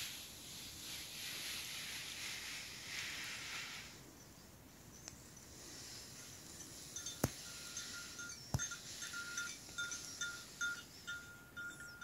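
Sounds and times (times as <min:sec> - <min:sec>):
small metal bell tinkling: 0:06.2 - 0:12.0.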